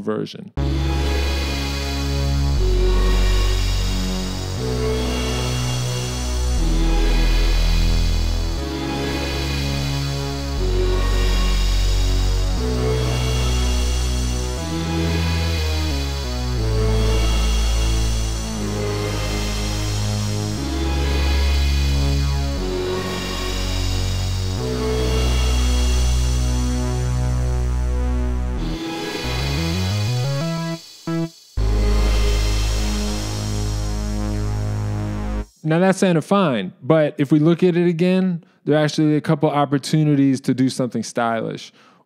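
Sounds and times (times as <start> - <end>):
sampled chord over bass note: 0.6 - 35.8.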